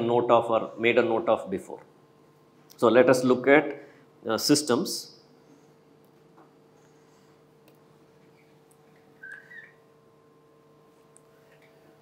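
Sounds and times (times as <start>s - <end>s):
faint electrical hum: 0.0s - 12.0s
high-pitched squeak: 9.2s - 9.8s.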